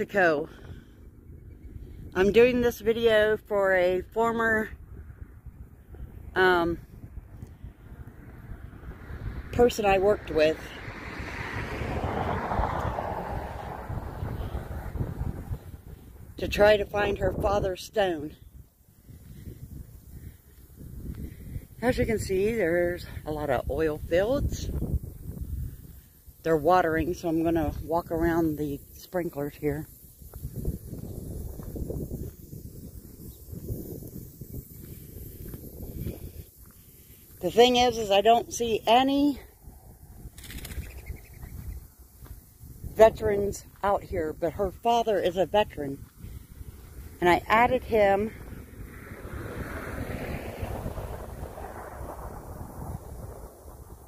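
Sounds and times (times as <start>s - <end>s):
wind rumbling on microphone: 0.0s - 54.0s
footsteps on dry grass: 29.8s - 37.7s, 41.4s - 42.5s.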